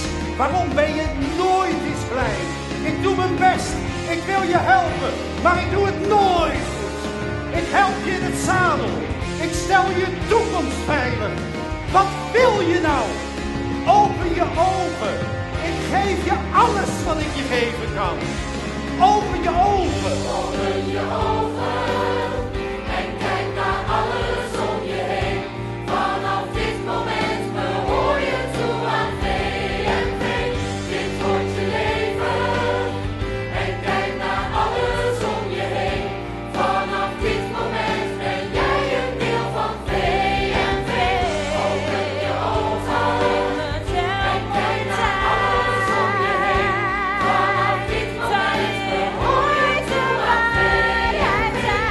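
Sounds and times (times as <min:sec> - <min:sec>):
instrumental accompaniment: 0:00.0 - 0:51.9
ensemble singing as a choir: 0:01.0 - 0:51.9.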